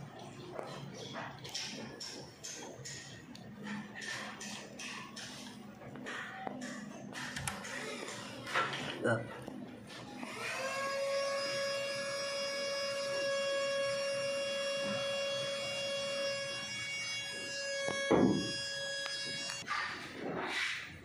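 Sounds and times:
steady high-pitched tone: 10.2 - 19.6.

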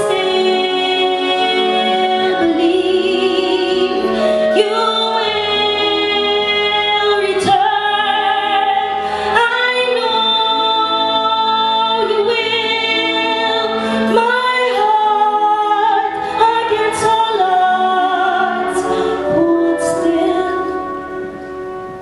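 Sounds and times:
wind band sustained chords: 0.0 - 22.0
woman singing with vibrato: 0.0 - 22.0.

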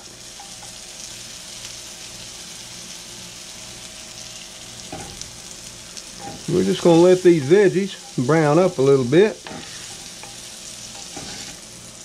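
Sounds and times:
vegetables sizzling in a skillet: 0.0 - 12.0.

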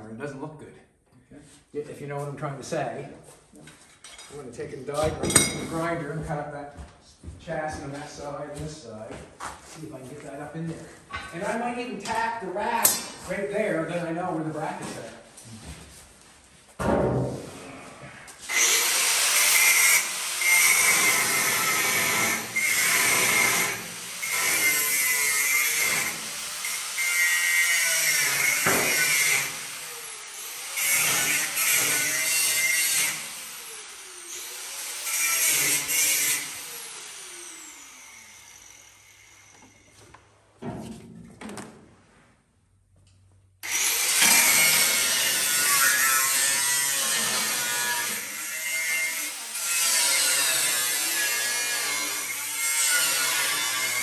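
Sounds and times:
grinder cutting steel: 18.4 - 39.8, 43.6 - 54.0.

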